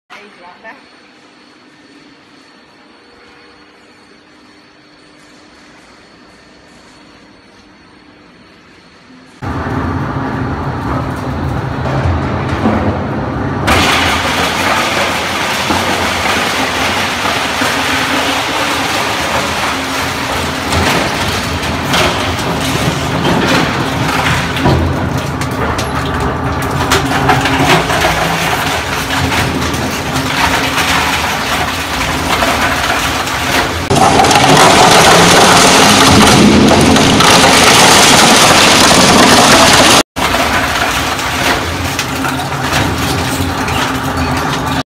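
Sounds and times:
shredder crunching plastic: 13.7 - 44.8.

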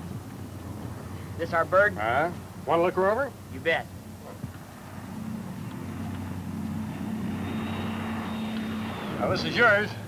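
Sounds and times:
propeller aircraft engine drone: 0.0 - 10.0
thin high whine: 5.1 - 10.0.

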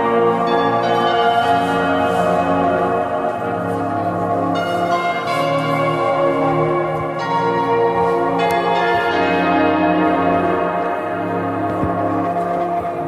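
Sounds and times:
steady drone: 0.0 - 13.0.

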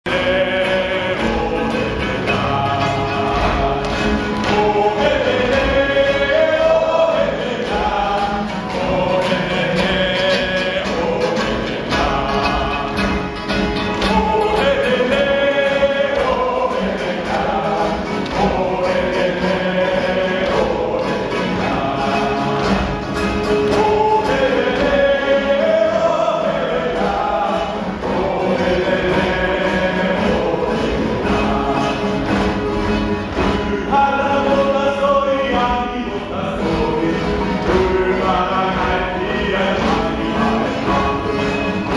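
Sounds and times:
group of people singing: 0.0 - 41.9.

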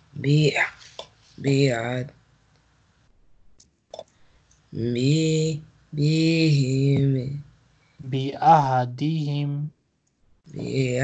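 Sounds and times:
man chanting: 4.8 - 7.4, 8.0 - 9.7, 10.5 - 11.0.

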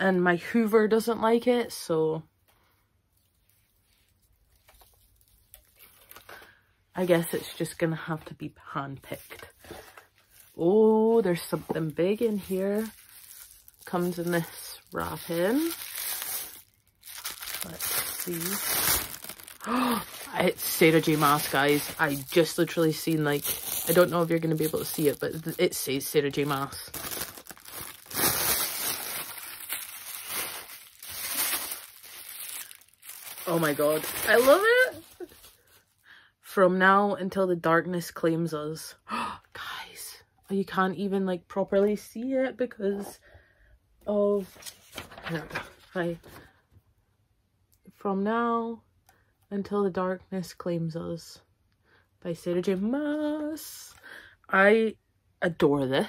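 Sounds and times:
paper shreds rustling and crackling: 11.3 - 35.6.

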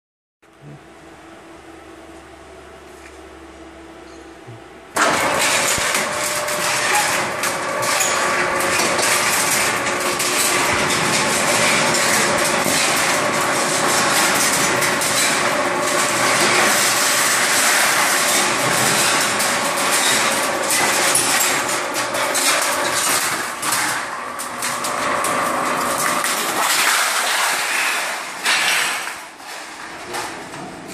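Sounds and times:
metal slitting machine running: 4.9 - 30.9.

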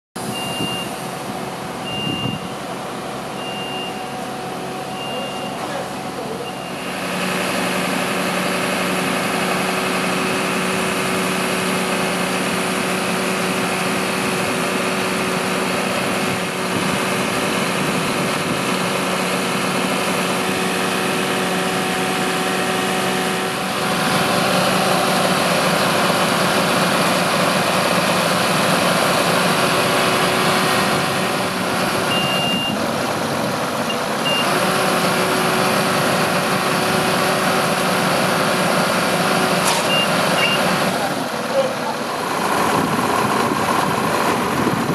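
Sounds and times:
diesel engine idling: 0.2 - 44.9
short high beeps: 0.3 - 1.0, 1.8 - 2.6, 3.4 - 4.2, 4.8 - 5.7, 6.4 - 6.9, 32.1 - 32.8, 39.9 - 40.7.

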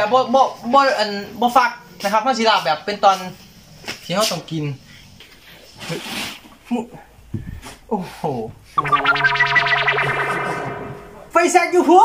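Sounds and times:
distorted electric guitar: 8.8 - 11.4.

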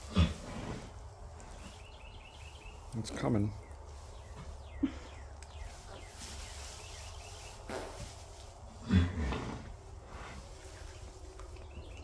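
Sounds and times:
horse low vocal grunt: 0.0 - 0.9, 8.8 - 10.4.

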